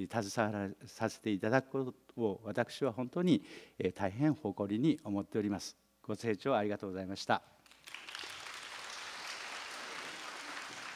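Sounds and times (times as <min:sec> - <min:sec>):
audience applauding: 0:07.7 - 0:10.9.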